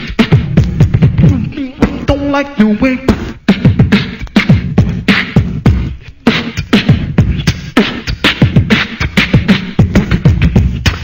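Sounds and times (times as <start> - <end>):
beatboxing: 0.0 - 11.0.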